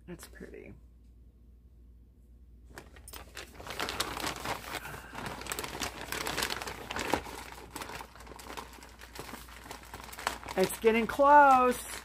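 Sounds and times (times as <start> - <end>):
packaging crinkling and rustling: 2.7 - 12.0.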